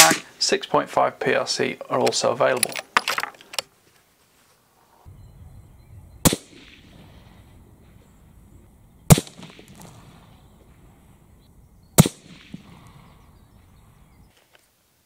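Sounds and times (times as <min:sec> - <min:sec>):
rifle shots with echo: 0:06.2 - 0:08.0, 0:09.1 - 0:11.0, 0:11.9 - 0:13.8.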